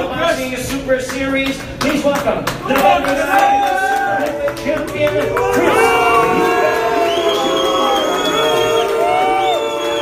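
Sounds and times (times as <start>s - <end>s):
crowd cheering and shouting: 2.7s - 10.0s
loud music: 5.2s - 10.0s.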